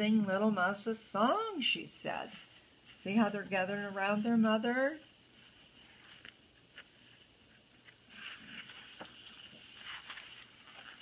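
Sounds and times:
book pages rustling: 5.0s - 11.0s.

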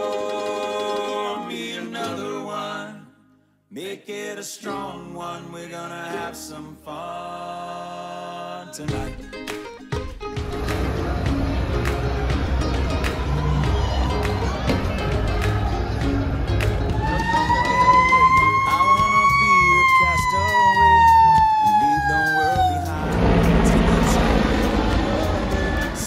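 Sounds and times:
crowd noise: 10.5s - 18.8s
fire truck siren wailing: 10.7s - 26.0s.

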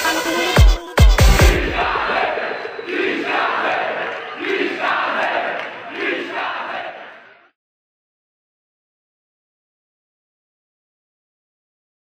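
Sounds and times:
crowd shouting in music: 1.2s - 7.5s.

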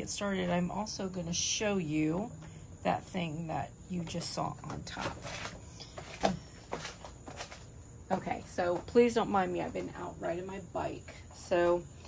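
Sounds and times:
handling noises: 4.6s - 7.8s.

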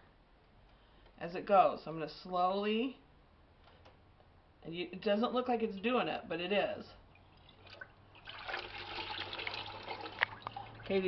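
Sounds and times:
water sloshing in a bucket: 7.1s - 11.0s.

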